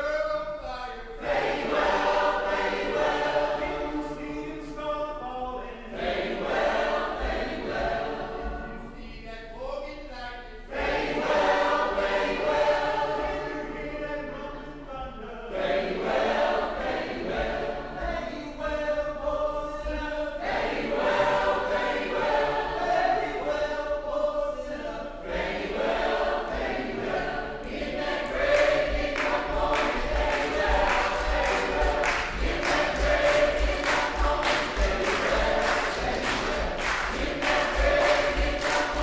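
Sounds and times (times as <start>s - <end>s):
choir singing held chords: 1.0s - 9.3s, 10.4s - 39.0s.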